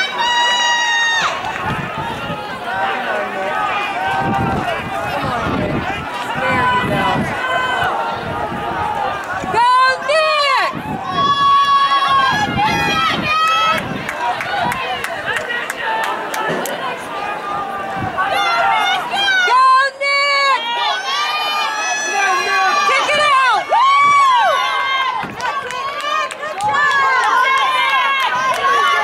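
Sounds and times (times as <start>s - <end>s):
loud shout: 0.0s - 29.0s
people talking and calling out: 0.0s - 29.0s.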